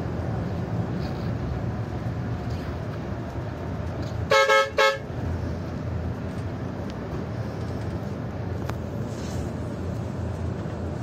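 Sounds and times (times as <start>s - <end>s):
bus engine and tyres rumbling: 0.0s - 11.0s
bus horn toots: 4.2s - 5.1s.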